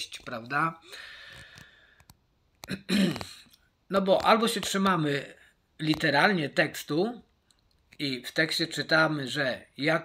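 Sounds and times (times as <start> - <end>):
man breathing out: 0.8 - 2.1.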